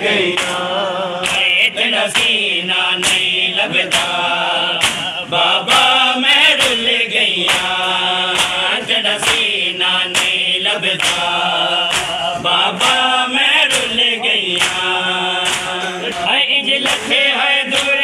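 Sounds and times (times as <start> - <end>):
crowd of men chanting: 0.0 - 18.0
hands slapping chests: 0.3 - 18.0.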